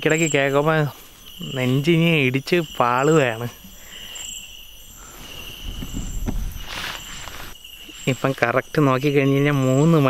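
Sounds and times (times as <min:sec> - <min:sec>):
insects chirping: 0:00.0 - 0:10.0
rustle of movement: 0:03.9 - 0:08.4.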